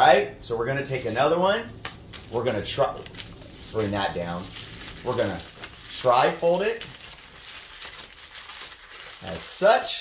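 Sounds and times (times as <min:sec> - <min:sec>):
plastic mailer crinkling: 0:00.8 - 0:10.0.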